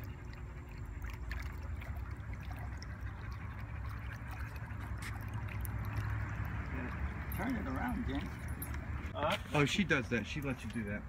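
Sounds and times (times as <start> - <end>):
low pump hum: 0.0 - 11.0
trickling water: 0.0 - 11.0.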